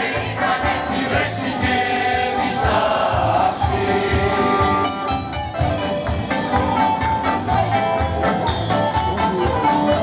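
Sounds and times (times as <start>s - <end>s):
mixed choir singing in harmony: 0.0s - 4.9s.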